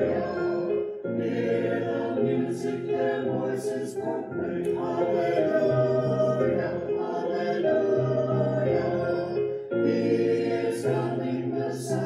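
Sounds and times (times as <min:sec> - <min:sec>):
church choir singing in parts: 0:00.0 - 0:12.0.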